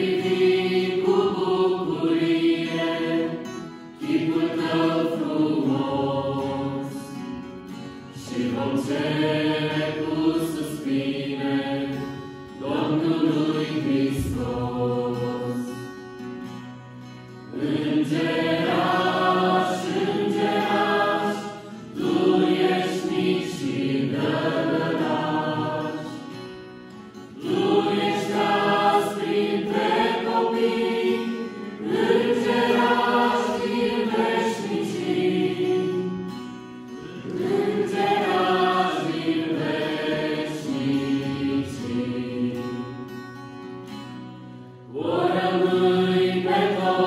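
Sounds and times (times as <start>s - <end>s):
choir singing a hymn: 0.0s - 43.4s, 44.7s - 47.0s
strummed acoustic guitar: 0.0s - 47.0s.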